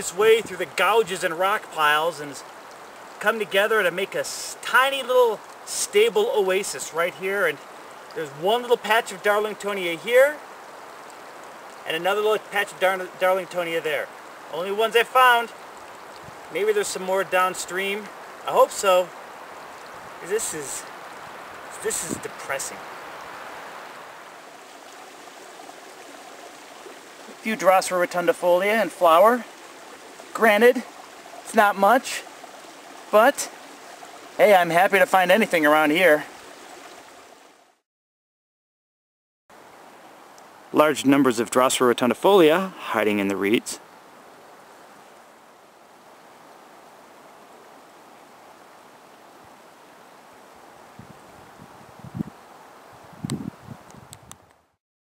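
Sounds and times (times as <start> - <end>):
outdoor background hiss: 0.0 - 37.8, 39.5 - 54.8
stream flowing: 0.0 - 37.8, 39.5 - 54.8.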